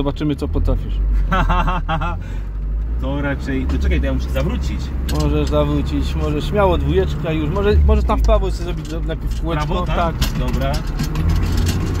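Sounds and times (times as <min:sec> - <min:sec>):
car engine low drone: 0:00.0 - 0:12.0
man laughing: 0:01.2 - 0:02.4.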